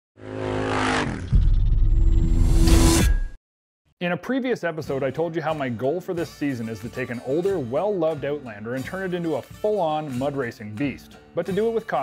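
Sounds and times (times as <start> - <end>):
engine tone: 0.2 - 2.5.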